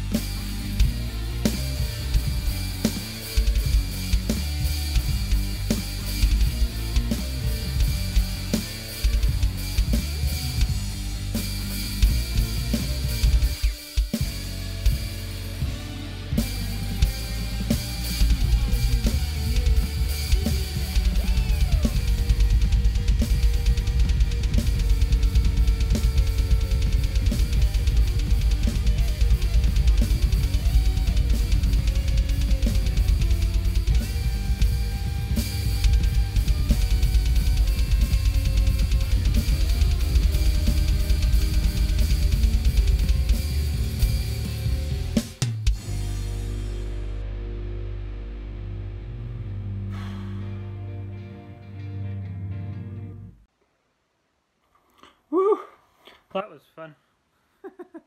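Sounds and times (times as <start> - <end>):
rapid bass drum pattern: 0.0 - 46.7
electronic drum kit: 0.0 - 51.6
heavy psychedelic rock music: 0.0 - 53.4.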